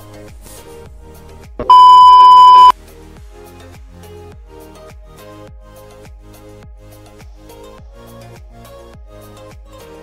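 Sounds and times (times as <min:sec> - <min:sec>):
loud electronic beep: 0:01.6 - 0:02.7.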